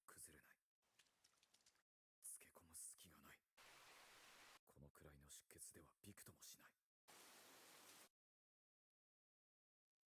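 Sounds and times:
rain hissing: 0:03.6 - 0:04.6, 0:07.1 - 0:08.1.

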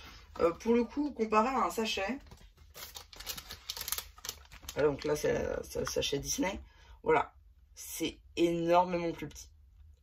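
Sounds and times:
foil bag crinkling: 0:02.2 - 0:06.0.

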